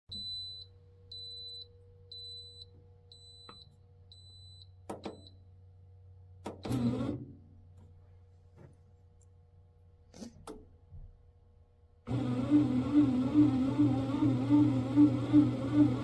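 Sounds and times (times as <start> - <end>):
bread maker beeping: 12.1 - 16.0
kneading motor hum: 12.1 - 16.0.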